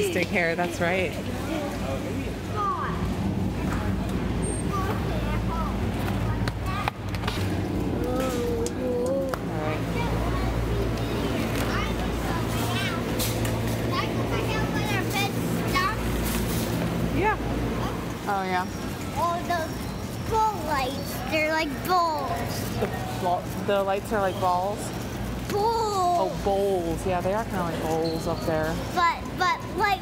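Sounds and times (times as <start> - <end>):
faint voices: 0.0 - 16.2
low rumble of busy store: 0.0 - 30.0.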